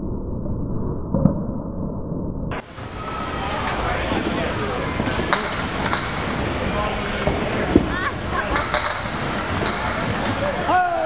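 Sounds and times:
muffled bowling alley rumble: 0.0 - 11.0.

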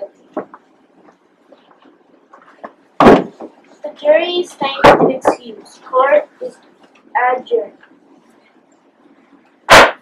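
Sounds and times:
gavel bang on wood: 3.0 - 3.5, 9.7 - 10.0.

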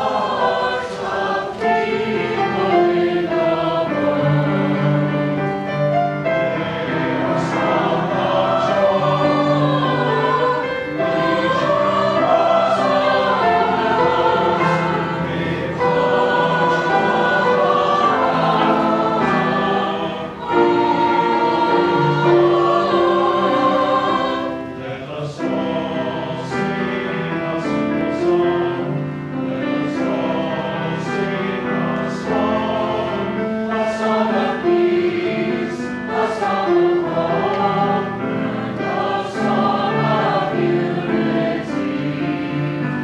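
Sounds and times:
mixed choir singing: 0.0 - 43.0.

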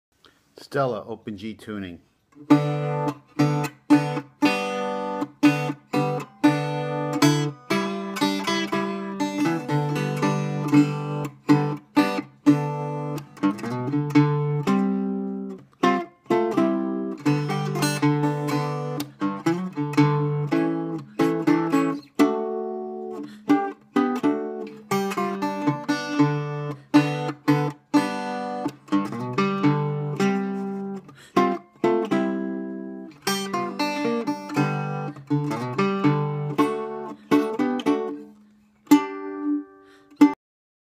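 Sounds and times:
acoustic guitar picked and strummed: 2.3 - 40.4.

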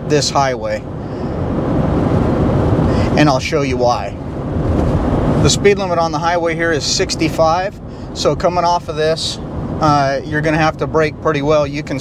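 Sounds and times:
wind noise: 0.8 - 10.5.

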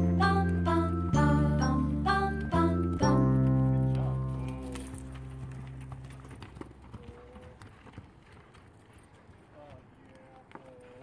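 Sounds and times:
music: 0.0 - 6.2
horse hoofbeats on sand: 3.0 - 11.0.

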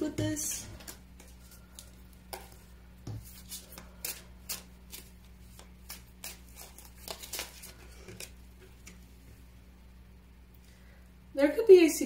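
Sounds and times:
low steady hum: 0.0 - 12.0
cards being shuffled: 0.2 - 9.0.

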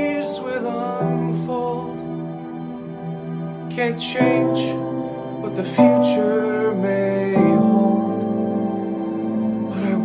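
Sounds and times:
man singing a slow ballad: 0.0 - 2.4, 3.6 - 9.0, 9.6 - 10.0
held accompaniment chords: 0.0 - 10.0.

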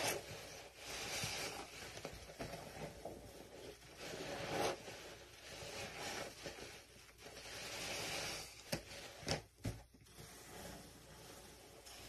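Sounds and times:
soap paste rasping scrape: 0.0 - 9.4, 10.0 - 12.0.

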